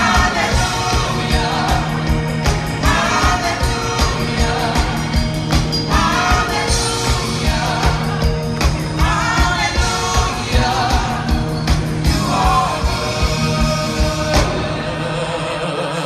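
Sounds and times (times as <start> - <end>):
band playing steady beat: 0.0 - 15.7
gospel group singing in harmony: 0.0 - 16.0.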